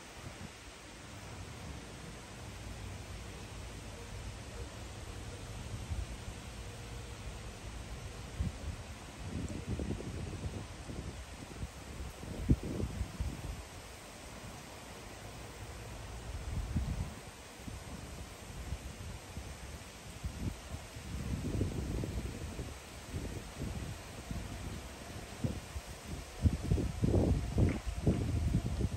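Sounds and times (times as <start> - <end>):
wind gusting through treetops: 0.0 - 28.9
wind buffeting microphone: 8.4 - 13.9, 16.4 - 28.9.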